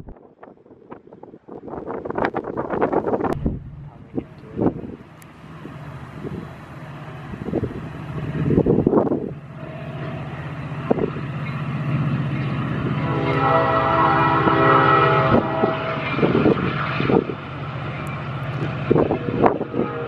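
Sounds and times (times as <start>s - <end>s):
train running by: 0.0s - 20.0s
train horn chord: 12.8s - 16.8s, 19.1s - 20.0s.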